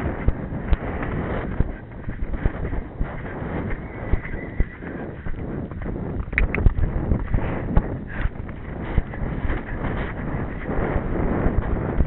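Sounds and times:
pony hooves thudding on sand: 0.0s - 12.0s
rushing noise of movement: 0.0s - 12.0s.

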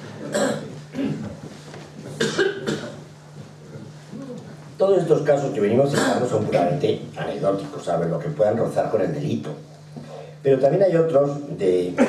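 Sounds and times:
person coughing: 0.2s - 1.3s, 2.2s - 3.0s, 5.9s - 6.3s.

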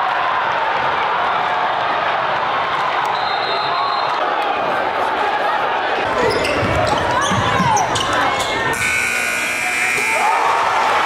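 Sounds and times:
high buzzer tone: 8.7s - 10.6s
people shouting: 10.0s - 11.0s.

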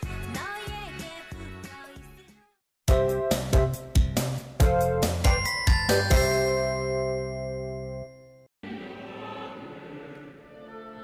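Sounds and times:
bell-like chime jingle: 5.1s - 8.5s
choir with orchestra: 8.6s - 11.0s.

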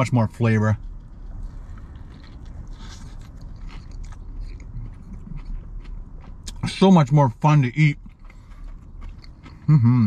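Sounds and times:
biting and chewing sandwich: 0.8s - 6.8s, 8.0s - 10.0s.

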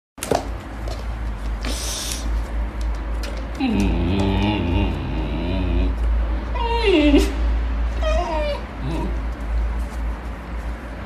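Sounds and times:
dog howling grumble: 3.6s - 7.4s, 8.0s - 9.2s.

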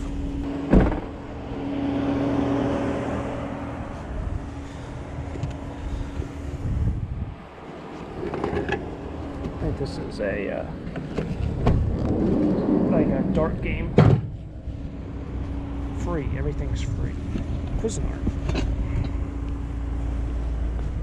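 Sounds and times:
motor vehicle hum: 0.0s - 21.0s
loud thump: 0.6s - 1.2s, 11.6s - 12.3s, 13.8s - 14.5s.

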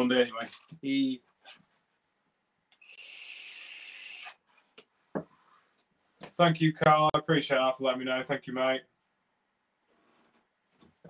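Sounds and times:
person vaping breathy hiss: 2.8s - 4.5s.

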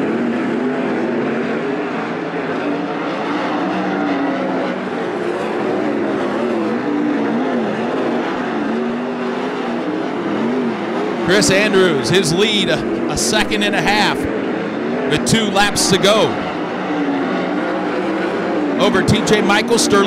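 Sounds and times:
racing car engines at high revs: 0.0s - 20.0s.

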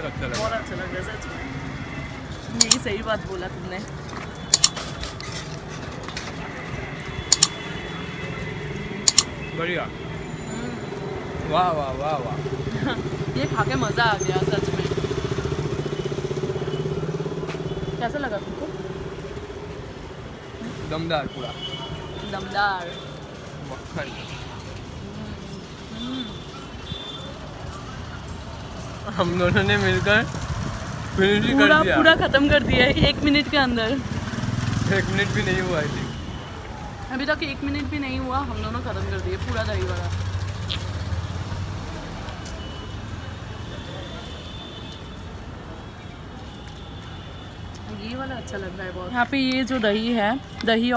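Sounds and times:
street traffic engine hum: 0.0s - 50.9s.

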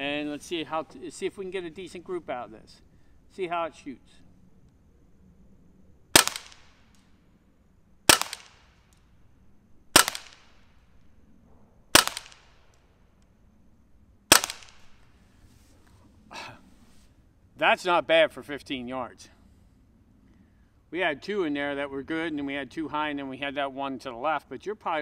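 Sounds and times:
air rifle shots: 6.1s - 7.1s, 8.1s - 9.0s, 9.9s - 10.8s, 11.9s - 12.8s, 14.3s - 15.0s.

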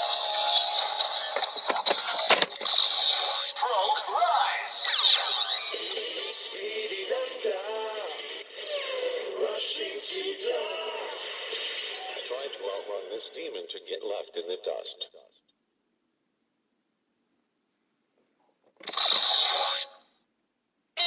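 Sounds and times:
electronic music from toy speaker: 0.0s - 6.8s, 18.8s - 19.9s.

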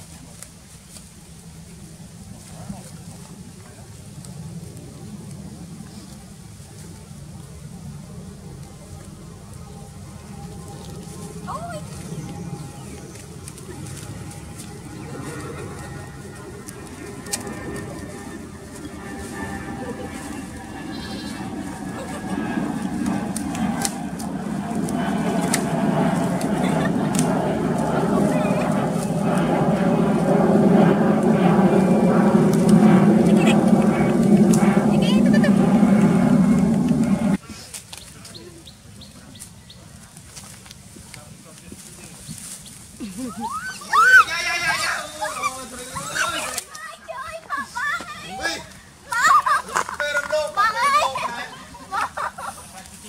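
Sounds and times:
woman squealing: 43.3s - 44.3s.

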